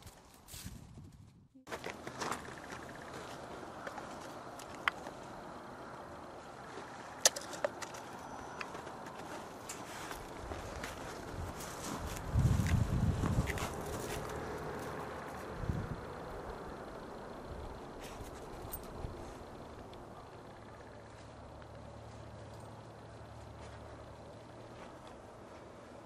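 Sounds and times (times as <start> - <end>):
faint steady outdoor noise: 0.0 - 26.0
low hum: 1.4 - 26.0.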